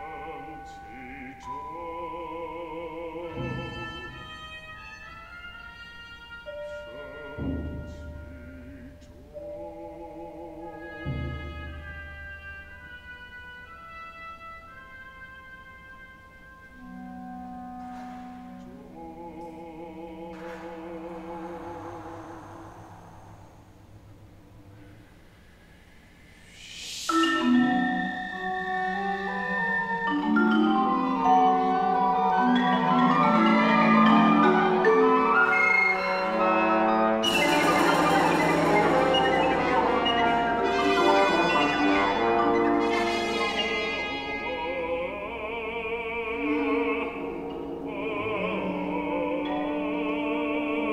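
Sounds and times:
woodwinds holding long notes: 3.0s - 25.1s, 26.4s - 50.9s
low percussion rumble: 20.0s - 26.7s, 37.2s - 41.3s
percussion crash with shimmer: 37.2s - 41.9s.

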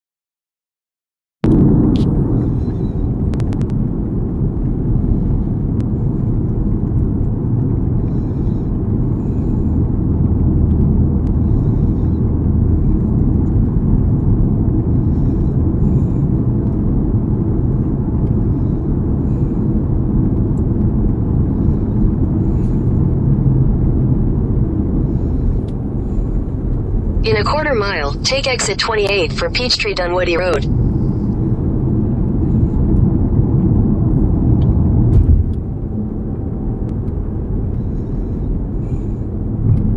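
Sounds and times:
road and tyre noise in car: 1.5s - 28.6s, 30.4s - 39.9s.

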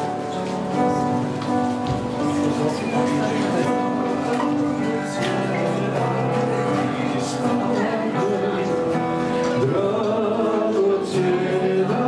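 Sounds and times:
acoustic guitars strummed: 0.0s - 12.0s
held keyboard chords: 0.0s - 12.0s.

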